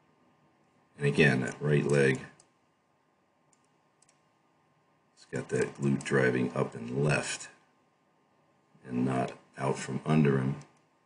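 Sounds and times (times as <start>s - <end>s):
faint clicks: 1.5s - 2.6s, 3.5s - 4.3s, 10.6s - 10.9s.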